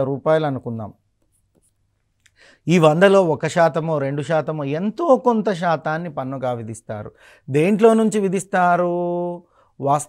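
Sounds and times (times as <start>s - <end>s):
man speaking: 2.7s - 10.0s.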